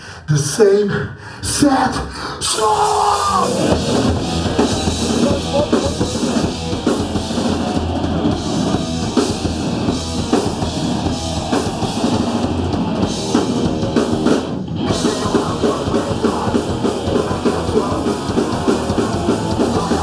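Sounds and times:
distorted electric guitars: 0:02.4 - 0:20.0
bass guitar: 0:02.5 - 0:20.0
pounding drum kit: 0:02.5 - 0:20.0.

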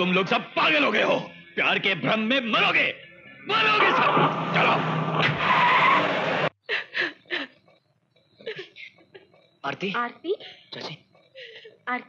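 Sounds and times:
tyres screeching: 0:02.6 - 0:06.5
car engine running hard: 0:04.1 - 0:06.5.

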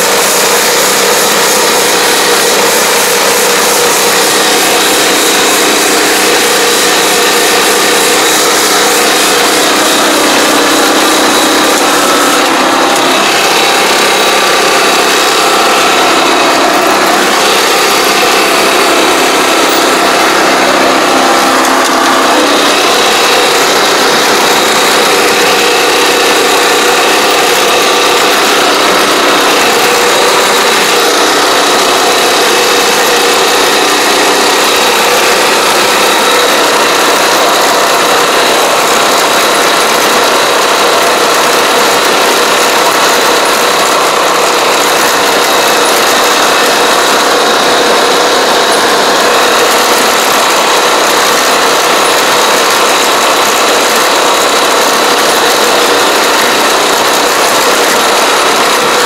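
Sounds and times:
small engine running: 0:00.0 - 0:59.0.

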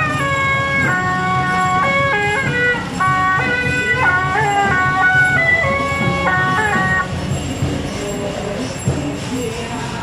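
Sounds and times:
suona melody: 0:00.0 - 0:07.1
truck engine idling: 0:00.0 - 0:08.9.

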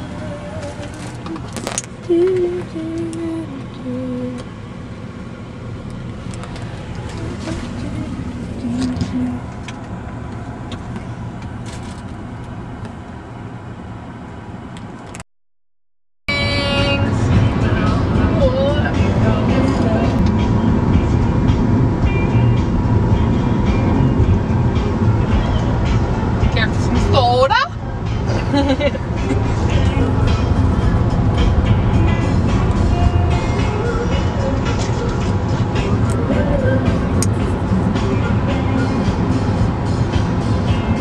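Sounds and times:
road noise inside car: 0:00.0 - 0:15.3, 0:16.3 - 0:41.0
music playing: 0:16.3 - 0:41.0.

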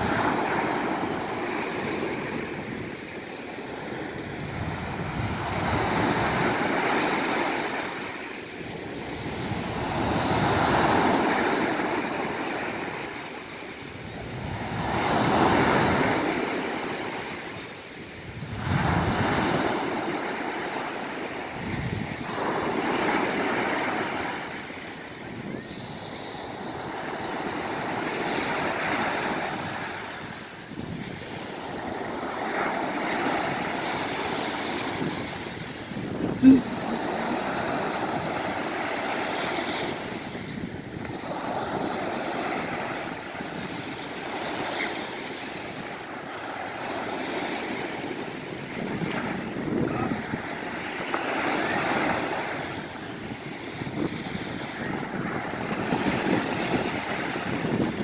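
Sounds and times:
wind buffeting microphone: 0:00.0 - 0:07.8, 0:18.0 - 0:20.4, 0:21.5 - 0:44.7, 0:45.6 - 0:58.0
ocean surf breaking: 0:00.0 - 0:58.0.

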